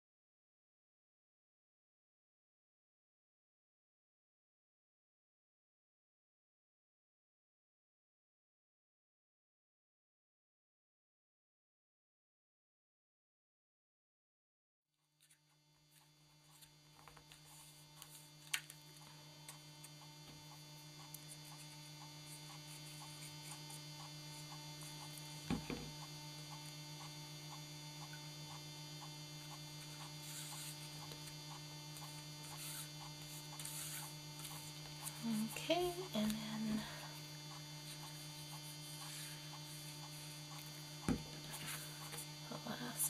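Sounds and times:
electrical mains hum: 0:15.1 - 0:43.0
faint regular ticking: 0:17.9 - 0:43.0.

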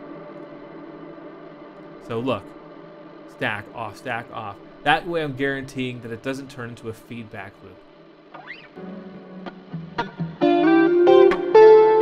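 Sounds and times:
electric guitar with reverb: 0:08.4 - 0:12.0.

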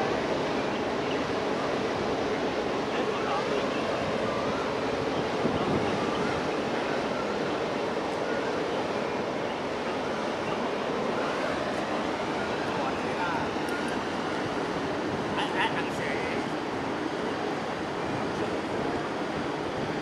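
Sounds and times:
churned water rushing: 0:00.0 - 0:20.0
ship wake washing: 0:00.0 - 0:20.0
wind: 0:00.0 - 0:20.0.

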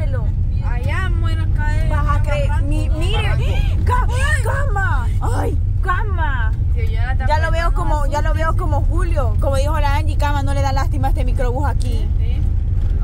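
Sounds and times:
people talking: 0:00.0 - 0:12.4
van rumbling on dirt road: 0:00.0 - 0:13.0.

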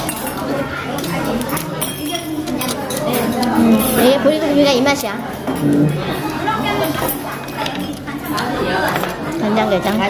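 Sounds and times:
metal utensils clinking on bowls: 0:00.0 - 0:10.0
murmur of voices: 0:00.0 - 0:10.0.

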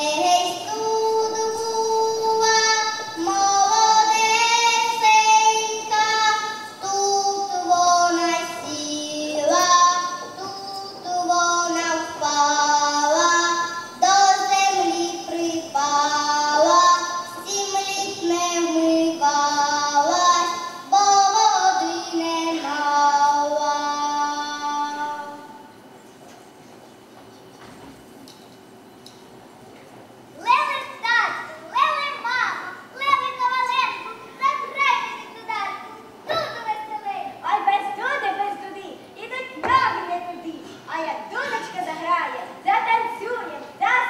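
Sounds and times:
girl singing folk song: 0:00.0 - 0:25.6
child speaking: 0:30.4 - 0:44.0.

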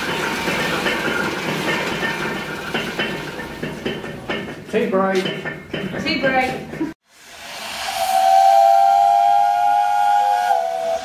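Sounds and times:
hiss of steam: 0:07.0 - 0:11.0
steam whistle blowing: 0:07.2 - 0:11.0.

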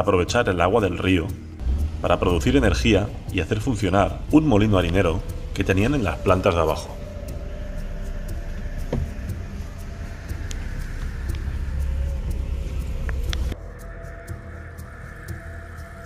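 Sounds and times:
car engine and tyre rumble: 0:01.5 - 0:13.7.

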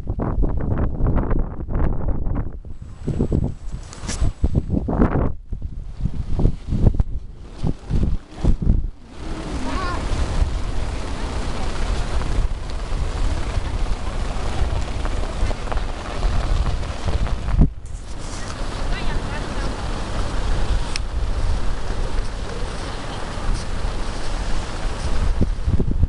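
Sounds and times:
strong wind buffeting microphone: 0:00.0 - 0:26.0.

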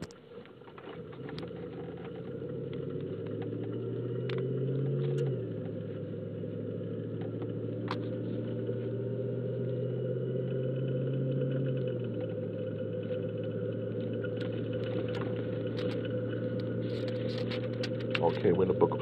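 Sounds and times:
car engine droning: 0:00.0 - 0:19.0.

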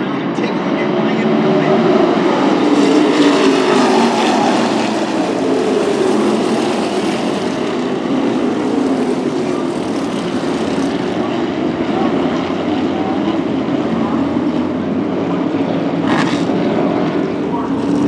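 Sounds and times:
race car engines passing by: 0:00.0 - 0:18.0.

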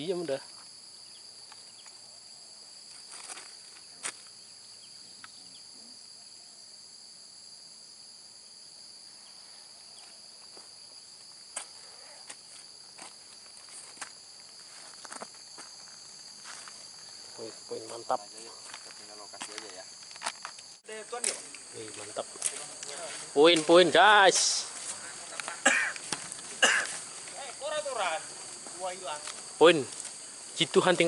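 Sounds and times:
insects chorus: 0:00.0 - 0:31.0.

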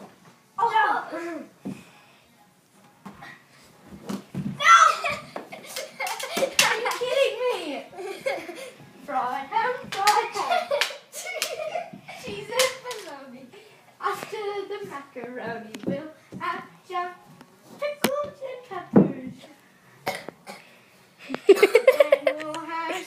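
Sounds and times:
children calling out: 0:04.6 - 0:05.3.

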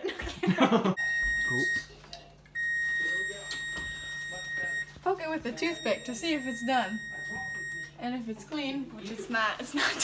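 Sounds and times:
oven electronic beep: 0:01.0 - 0:02.0, 0:02.6 - 0:08.0.

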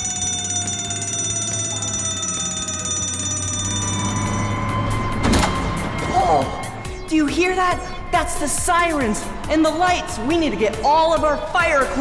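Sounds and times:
electronic alarm tone: 0:00.0 - 0:08.2.

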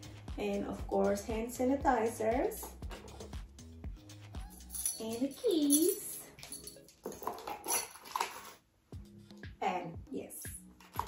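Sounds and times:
keys jingling into a handbag: 0:04.4 - 0:08.6.

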